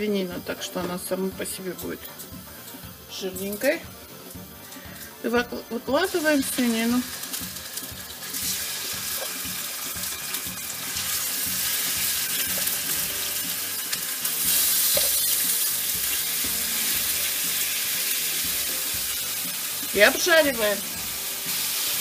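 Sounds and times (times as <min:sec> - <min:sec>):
meat sizzling in hot oil: 0:00.0 - 0:22.0.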